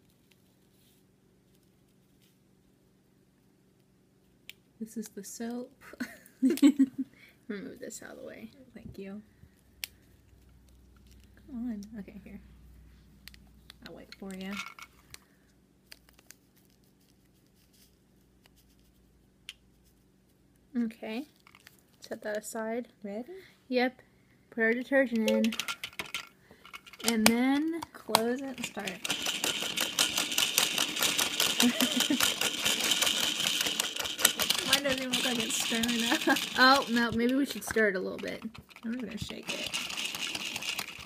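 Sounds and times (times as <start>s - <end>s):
faint steady hum: 0.0s - 41.0s
plastic toy parts clicking: 25.1s - 41.0s.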